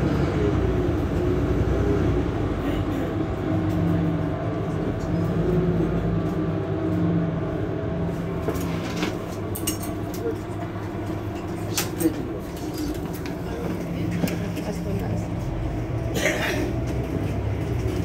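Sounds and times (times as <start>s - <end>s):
bus diesel engine idling: 0.0s - 18.0s.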